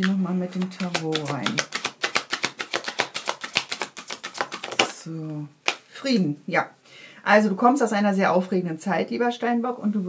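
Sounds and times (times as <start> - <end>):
cards shuffling: 0.0 - 5.0, 5.6 - 5.9
card snap: 0.5 - 5.0, 5.6 - 5.8.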